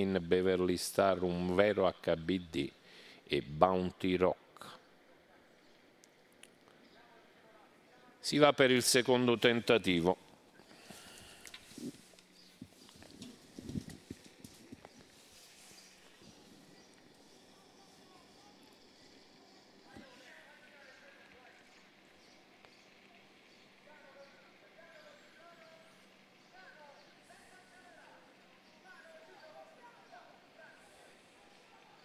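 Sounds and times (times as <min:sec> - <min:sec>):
faint distant voices: 0:00.0 - 0:32.0
hoofbeats of trotting horses: 0:10.8 - 0:15.2.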